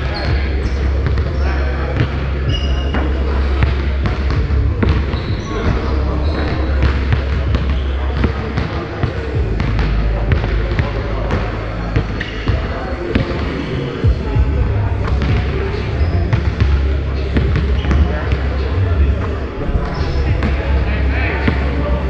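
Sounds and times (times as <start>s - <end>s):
people talking: 0.0s - 22.0s.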